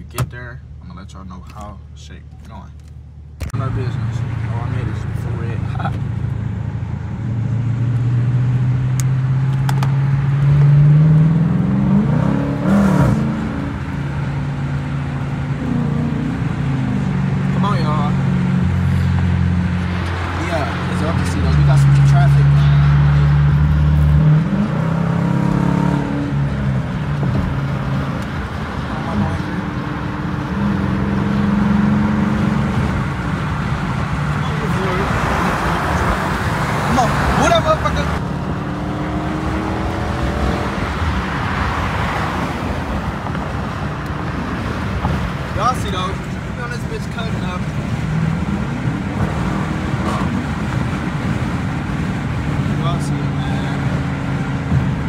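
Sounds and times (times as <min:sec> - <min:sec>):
car engine accelerating through gears: 0:03.6 - 0:55.0.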